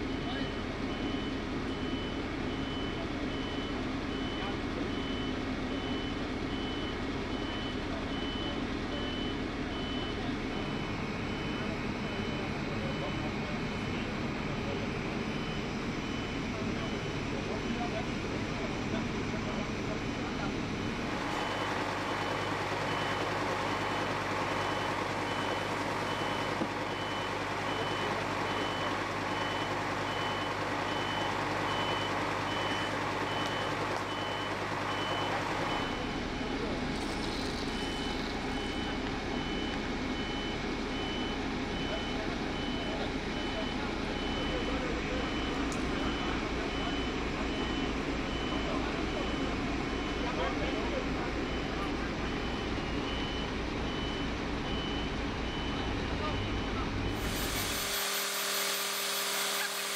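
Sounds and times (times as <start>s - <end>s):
diesel engine running: 0.0s - 59.9s
reversing warning beeper: 0.0s - 59.9s.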